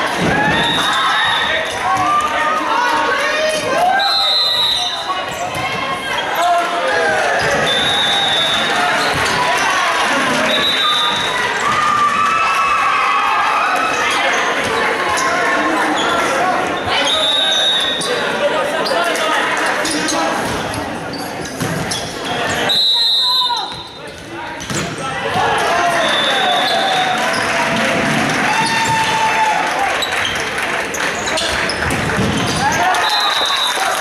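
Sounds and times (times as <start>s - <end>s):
players shouting: 0.0s - 21.1s, 22.1s - 34.0s.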